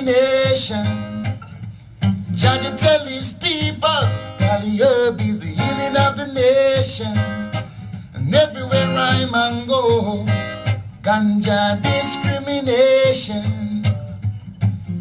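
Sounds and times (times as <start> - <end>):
man singing: 0.0 - 1.4, 2.3 - 14.2
acoustic guitar strummed: 0.0 - 15.0.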